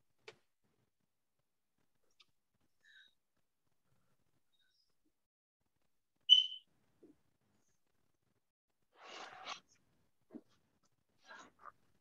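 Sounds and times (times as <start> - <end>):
short high-pitched whistle tone: 6.3 - 6.6.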